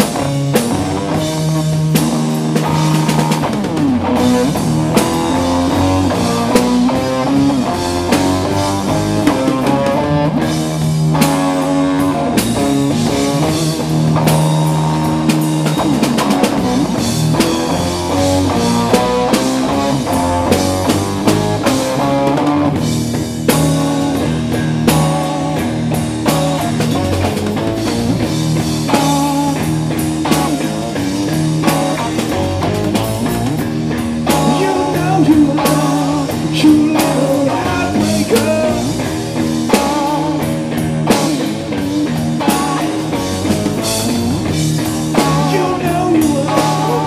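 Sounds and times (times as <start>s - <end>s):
bass: 0.0s - 47.0s
drum kit: 0.0s - 47.0s
electric guitar lead: 0.0s - 47.0s.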